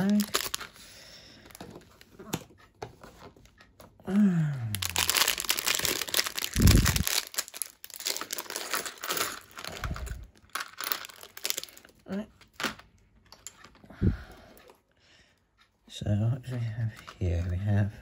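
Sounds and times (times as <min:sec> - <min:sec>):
plastic bag tearing: 0:00.0 - 0:00.7, 0:04.7 - 0:12.7
plastic bag crinkling: 0:00.0 - 0:00.8, 0:04.7 - 0:12.8.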